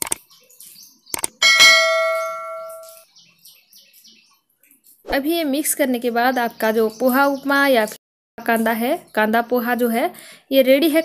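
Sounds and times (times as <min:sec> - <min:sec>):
mouse clicks: 0:01.1 - 0:01.4
bell ding: 0:01.4 - 0:03.0.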